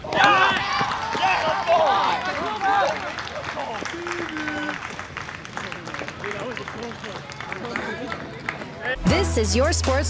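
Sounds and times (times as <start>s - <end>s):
people shouting and cheering: 0.0s - 5.0s.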